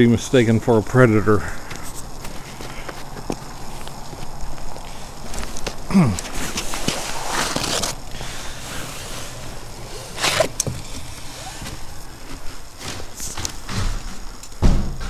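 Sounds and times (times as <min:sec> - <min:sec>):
footsteps crunching through snow: 0:01.6 - 0:13.7
foot thudding on wooden floor: 0:10.2 - 0:15.0.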